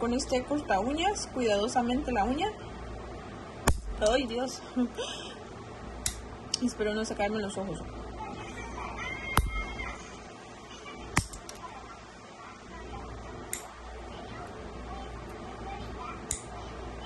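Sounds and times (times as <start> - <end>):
low steady background hum: 0.0 - 17.0.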